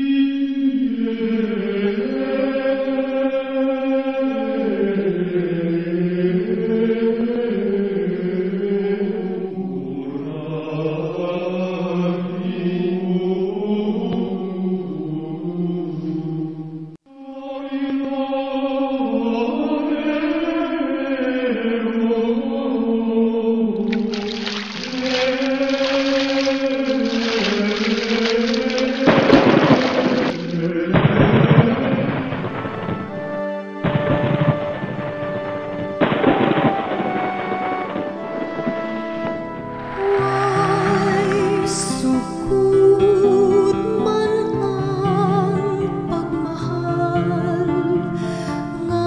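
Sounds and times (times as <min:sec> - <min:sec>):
slow vocal chant: 0:00.0 - 0:24.0, 0:25.0 - 0:33.4, 0:39.8 - 0:49.0.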